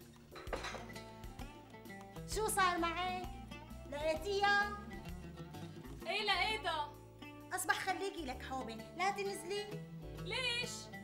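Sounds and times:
background music: 0:00.0 - 0:11.0
household items clattering: 0:00.4 - 0:01.1.

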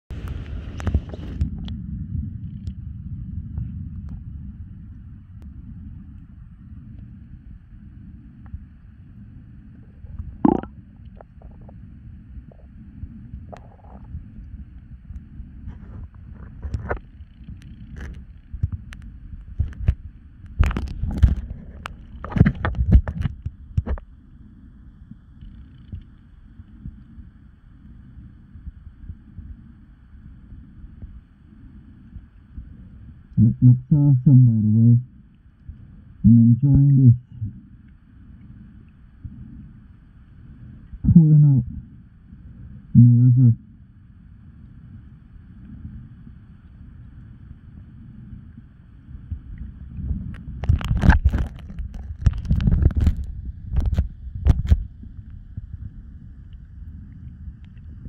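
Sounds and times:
muffled underwater rumble: 0:00.0 - 0:58.0.

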